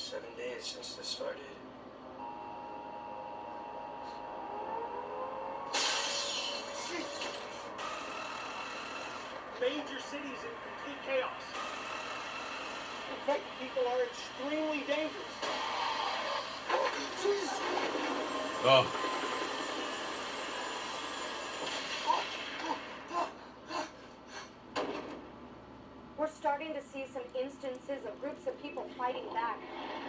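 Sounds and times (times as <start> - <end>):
film soundtrack through speakers: 0.0 - 30.0.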